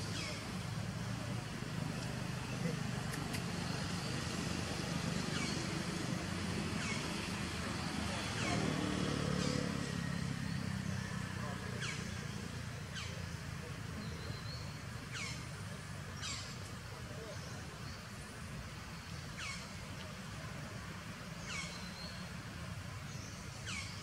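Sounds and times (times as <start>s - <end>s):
vehicle engine humming: 0.0s - 17.7s.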